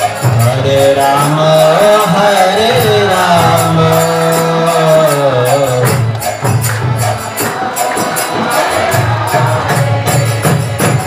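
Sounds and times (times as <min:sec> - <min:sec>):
group devotional chanting: 0:00.0 - 0:11.0
small metal percussion beat: 0:00.0 - 0:11.0.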